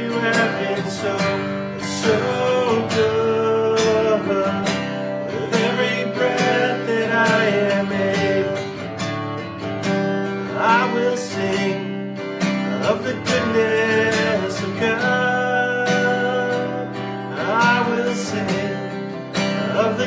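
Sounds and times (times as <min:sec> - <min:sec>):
man singing softly: 0:00.0 - 0:08.8, 0:10.4 - 0:12.0, 0:12.6 - 0:20.0
acoustic guitar strumming: 0:00.0 - 0:20.0.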